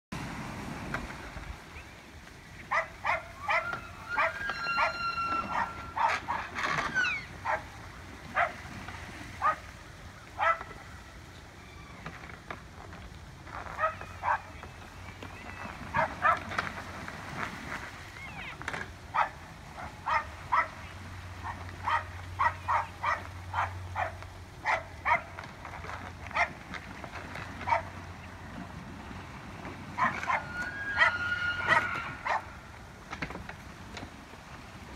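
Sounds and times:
thin high whining call: 3.4s - 7.4s, 30.0s - 32.4s.

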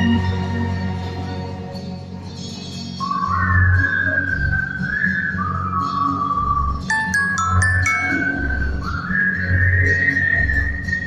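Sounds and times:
person whistling a melody: 3.0s - 11.0s.

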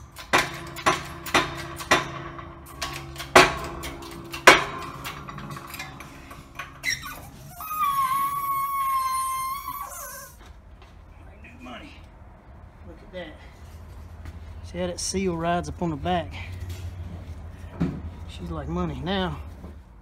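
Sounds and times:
high squeal of metal: 6.1s - 10.4s.

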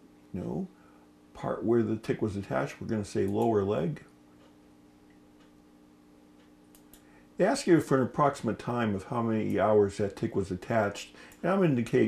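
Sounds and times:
faint steady hum: 0.0s - 12.0s
computer mouse clicks: 6.4s - 7.1s.

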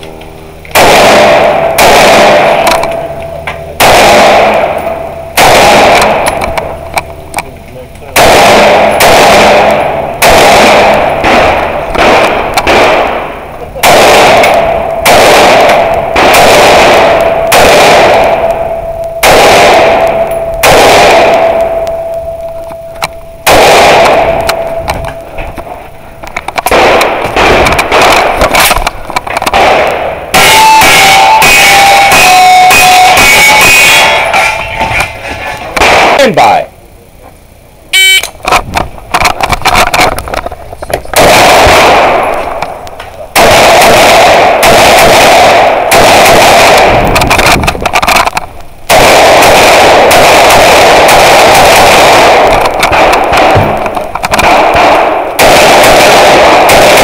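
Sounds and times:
rifle shots: 0.0s - 7.5s, 8.1s - 36.6s, 38.0s - 57.0s
rapid pistol shots: 0.7s - 36.6s, 38.3s - 57.0s.

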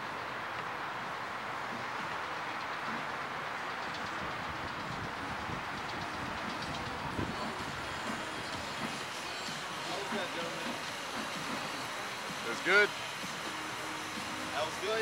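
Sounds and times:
rushing and rumbling noise: 0.0s - 15.0s.

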